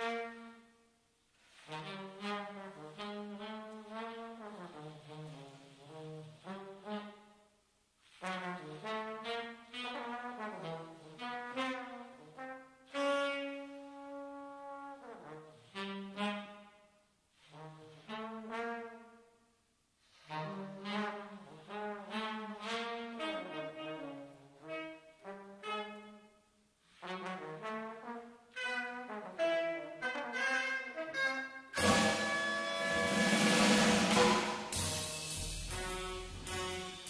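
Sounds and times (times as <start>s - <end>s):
trombone: 0.0s - 0.7s, 1.6s - 7.4s, 8.1s - 16.8s, 17.4s - 19.2s, 20.2s - 26.3s, 26.9s - 37.0s
tenor saxophone: 1.6s - 7.4s, 8.3s - 14.8s, 15.4s - 17.0s, 20.2s - 26.5s, 28.5s - 37.0s
drums and cymbals: 31.8s - 37.0s.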